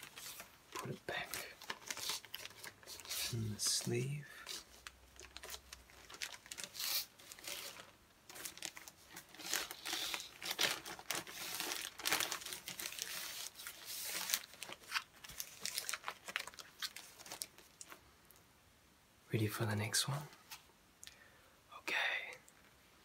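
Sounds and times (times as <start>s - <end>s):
record sleeve rustling: 0.0s - 18.0s.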